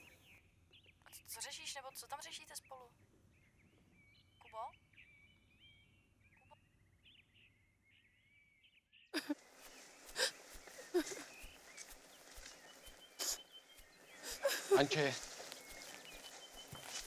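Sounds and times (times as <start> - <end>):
birds chirping: 0.0 - 17.0
footsteps through grass: 9.2 - 17.0.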